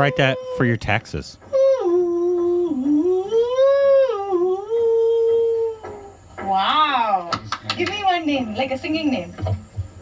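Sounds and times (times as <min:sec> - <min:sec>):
person singing wordless melody: 0:00.0 - 0:00.8, 0:01.4 - 0:06.6.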